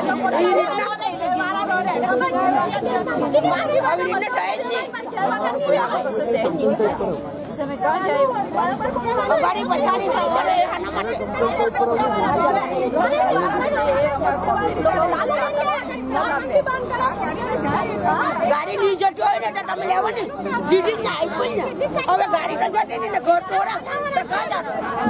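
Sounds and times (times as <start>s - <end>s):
women chattering: 0.0s - 25.0s.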